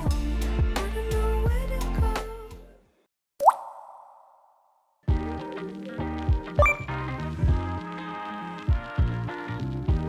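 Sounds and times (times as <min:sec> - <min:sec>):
rising bloop pop effect: 0:03.4 - 0:04.7, 0:06.6 - 0:07.0
background music: 0:05.1 - 0:10.0.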